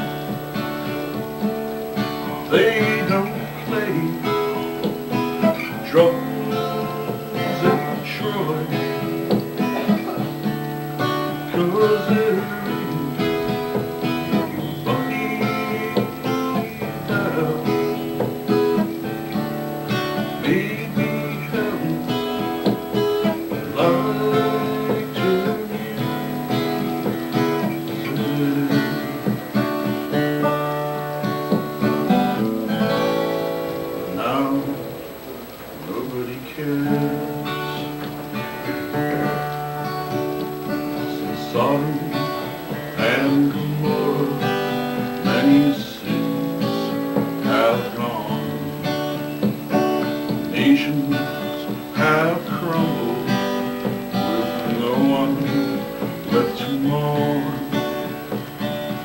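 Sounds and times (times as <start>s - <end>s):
strummed acoustic guitar: 0.0s - 59.0s.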